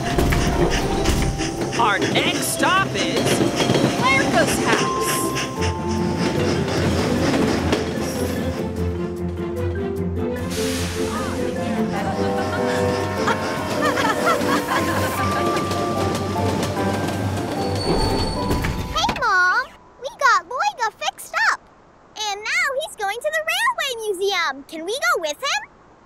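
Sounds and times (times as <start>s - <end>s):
cartoon background music: 0.0s - 20.2s
train running on rails: 0.0s - 21.3s.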